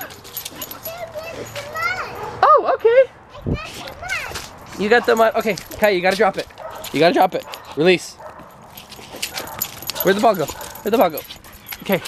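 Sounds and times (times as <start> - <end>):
quiet dog sounds: 6.5 - 12.0.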